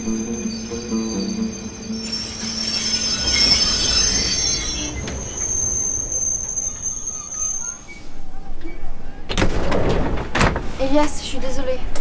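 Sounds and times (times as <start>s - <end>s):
music: 0.0s - 4.7s
train wheels squealing on rails: 0.0s - 8.8s.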